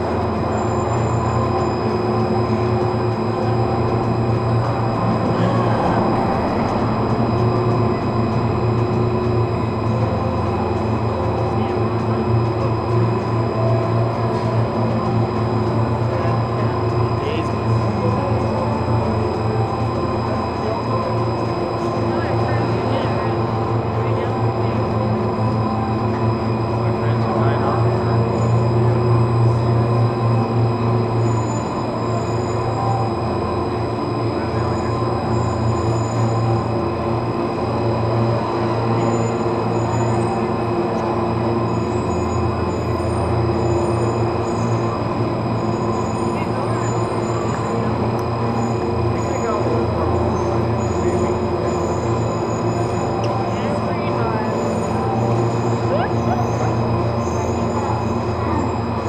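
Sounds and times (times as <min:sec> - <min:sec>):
gondola lift machinery drone: 0:00.0 - 0:59.0
machinery whining tones: 0:00.0 - 0:59.0.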